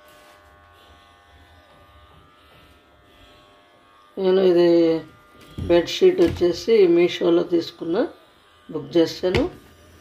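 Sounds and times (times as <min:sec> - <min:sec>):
faint electrical buzz: 0:00.0 - 0:10.0.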